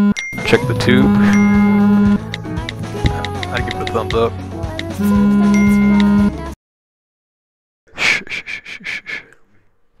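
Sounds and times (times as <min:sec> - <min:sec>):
quick sniffs: 0:08.0 - 0:09.4.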